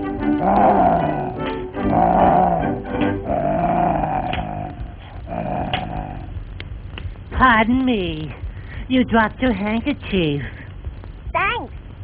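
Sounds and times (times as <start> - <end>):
cartoon lion growl: 0.0 - 6.3.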